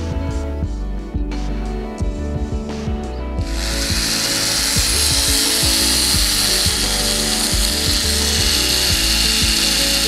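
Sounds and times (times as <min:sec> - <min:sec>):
rotary tool cutting metal: 0:03.5 - 0:10.0.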